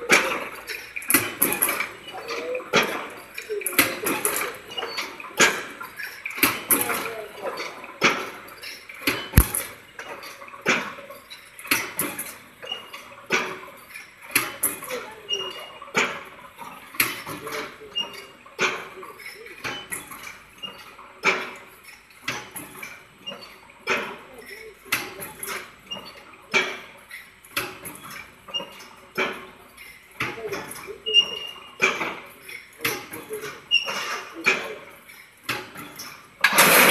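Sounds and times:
wire mesh machine clanking: 0:00.0 - 0:36.9.

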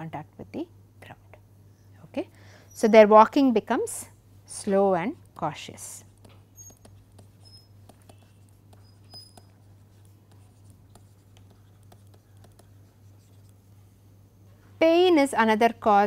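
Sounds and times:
steady low hum: 0:00.0 - 0:16.0
woman's voice: 0:02.0 - 0:06.0, 0:14.8 - 0:16.0
stylus tapping on tablet screen: 0:06.1 - 0:13.6.

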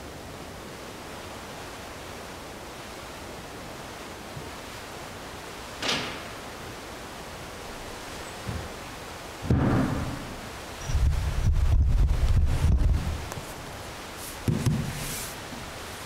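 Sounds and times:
steady hiss: 0:00.0 - 0:16.0
microphone handling thumps: 0:10.9 - 0:13.5, 0:14.4 - 0:15.0.

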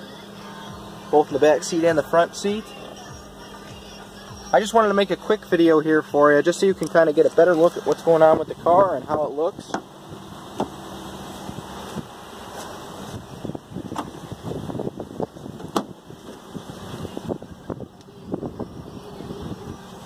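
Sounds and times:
wind on microphone: 0:11.3 - 0:12.2, 0:13.0 - 0:20.0.

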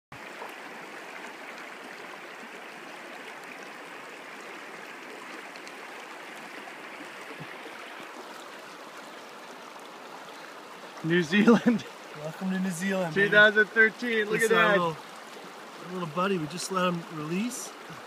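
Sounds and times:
river running over stones: 0:00.1 - 0:18.0.

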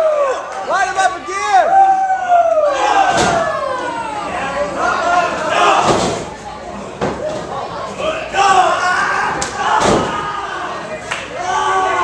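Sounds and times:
spectators shouting: 0:00.0 - 0:06.0, 0:08.0 - 0:12.0.

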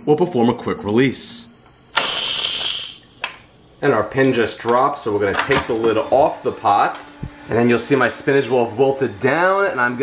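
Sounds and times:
pressure cooker steam hiss: 0:02.0 - 0:03.0
valve click: 0:02.0 - 0:03.4.

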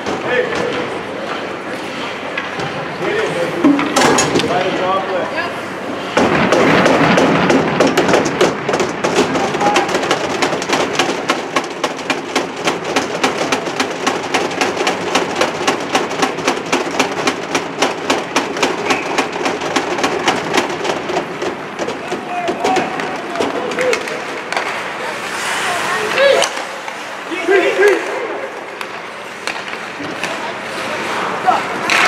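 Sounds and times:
sharp rhythmic knocks: 0:06.2 - 0:23.5.

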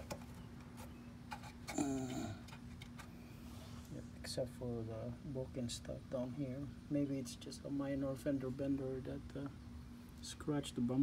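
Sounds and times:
steady low hum: 0:00.0 - 0:11.0
murmured voice: 0:01.7 - 0:02.4.

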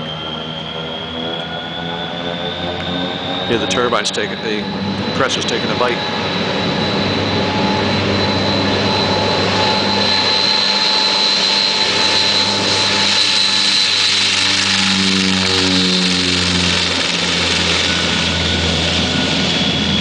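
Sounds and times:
propeller roar: 0:00.0 - 0:20.0
turboprop engine high whine: 0:00.0 - 0:20.0.

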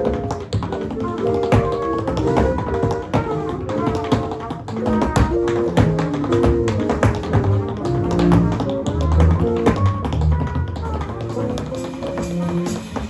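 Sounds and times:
improvised jazz: 0:00.0 - 0:13.0
tap-dance shoes tapping: 0:00.0 - 0:13.0
double bass notes: 0:00.8 - 0:13.0.

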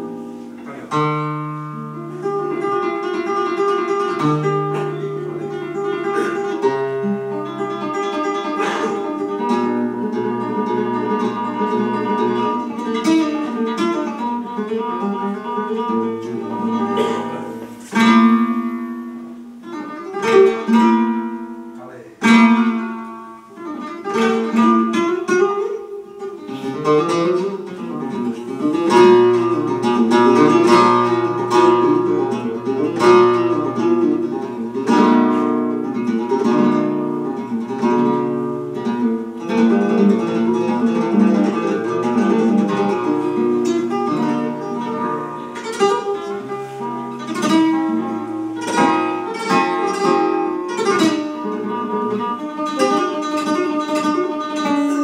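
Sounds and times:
flamenco guitar playing: 0:00.0 - 0:55.0.

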